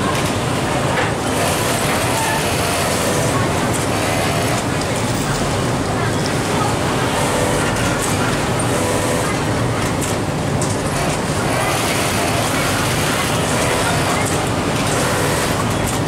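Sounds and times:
faint voices: 0.0 - 16.0
industrial sewing machines running: 0.0 - 16.0.

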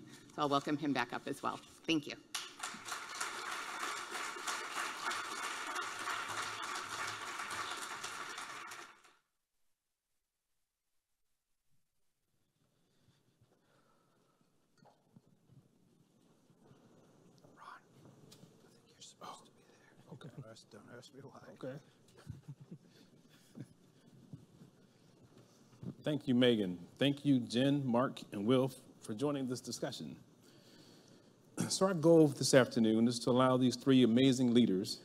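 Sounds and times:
audience applauding: 2.4 - 9.2.

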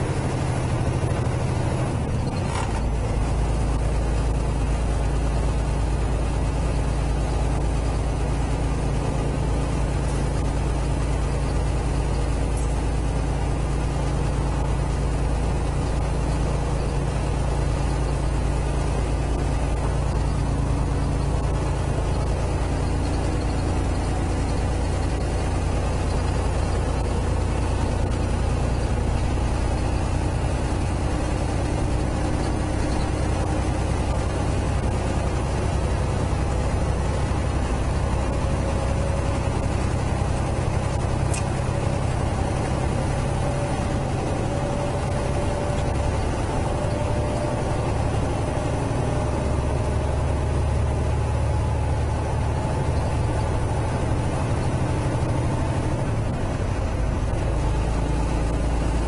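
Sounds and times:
road noise: 0.0 - 59.0
truck diesel engine drone: 0.0 - 59.0.

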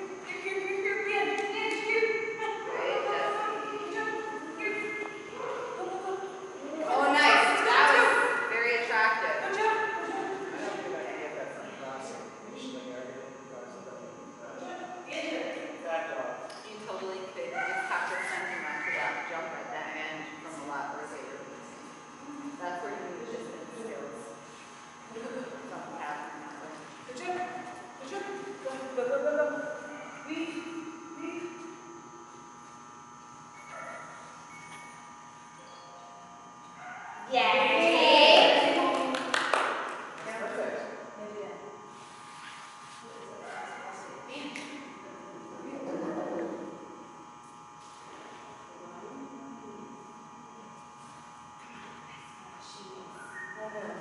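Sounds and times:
indistinct quiet voices: 0.0 - 54.0
steady electrical buzz: 0.0 - 54.0.

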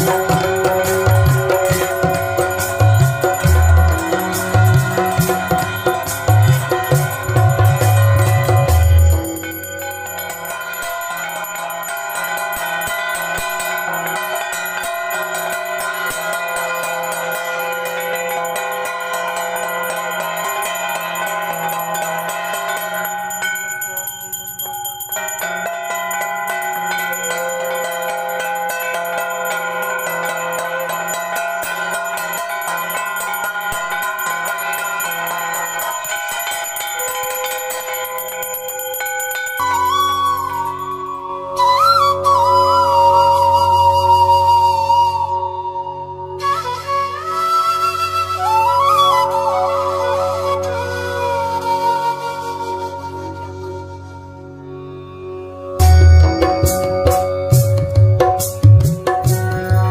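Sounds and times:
metallic clanging of bell and gongs: 0.0 - 41.7, 55.8 - 59.9.

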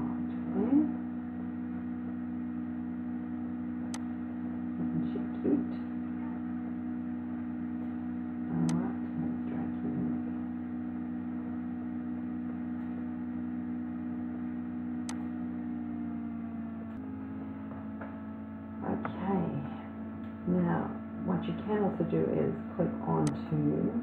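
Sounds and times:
low electrical hum: 0.0 - 24.0.

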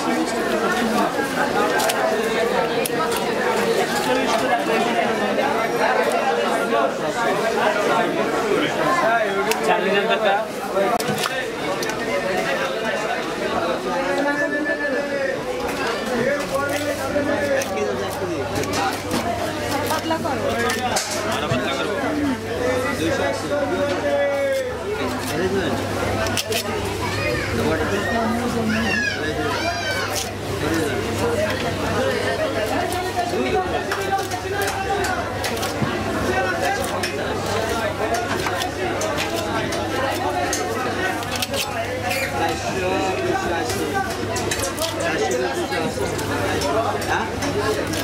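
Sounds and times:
crowd chatter: 0.0 - 48.0
people talking: 0.0 - 48.0.

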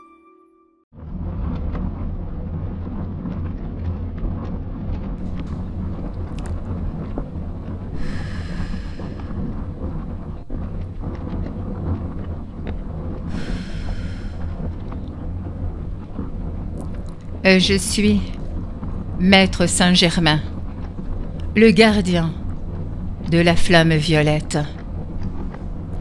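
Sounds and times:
high ringing tone: 0.0 - 0.8
deep rumbling noise: 1.0 - 26.0.

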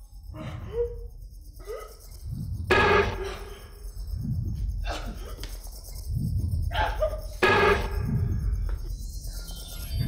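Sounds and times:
low rumbling drone: 0.0 - 9.3.

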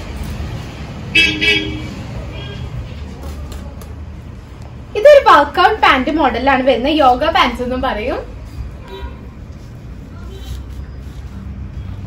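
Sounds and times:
low traffic rumble: 0.0 - 12.0
vehicle horn toots: 1.1 - 2.7, 8.8 - 9.3.

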